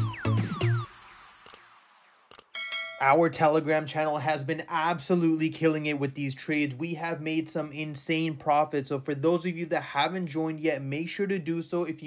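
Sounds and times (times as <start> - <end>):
electronic jingle: 2.3 - 3.4
bell-like chime: 2.5 - 3.4.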